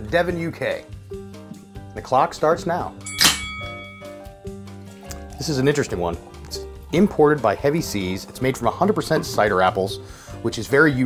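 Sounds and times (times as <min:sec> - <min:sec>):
background music: 0:00.0 - 0:11.0
bell ding: 0:03.1 - 0:04.3.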